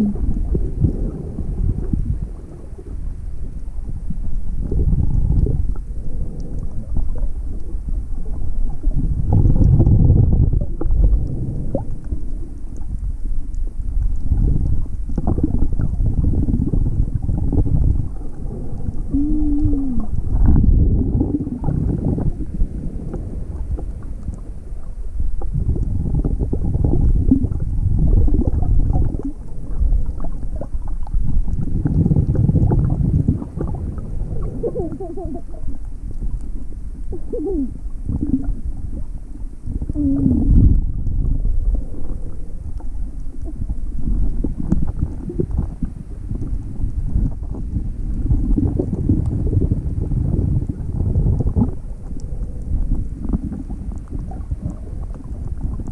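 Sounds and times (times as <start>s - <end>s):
muffled underwater rumble: 0.0s - 55.9s.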